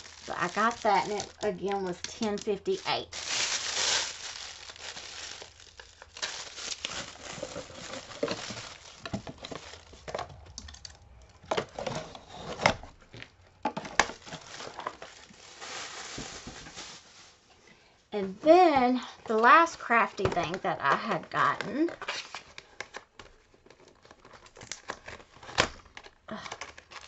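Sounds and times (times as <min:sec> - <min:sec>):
plastic packaging crinkling: 0:00.0 - 0:17.5, 0:19.3 - 0:27.0.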